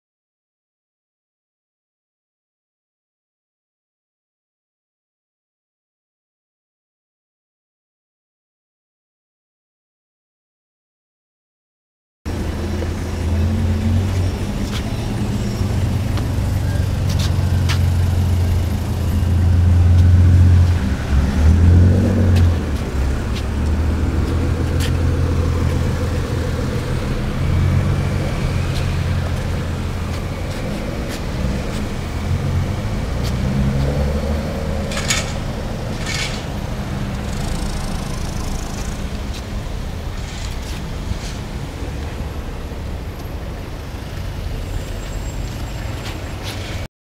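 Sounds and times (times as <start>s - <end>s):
car engine idling: 34.9s - 41.5s.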